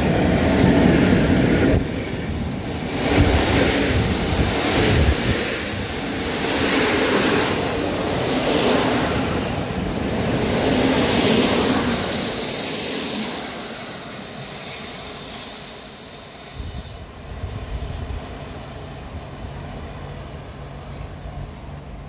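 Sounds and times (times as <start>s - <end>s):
train wheels rumbling on rails: 0.0s - 22.0s
high-pitched wheel squeal: 11.6s - 17.2s.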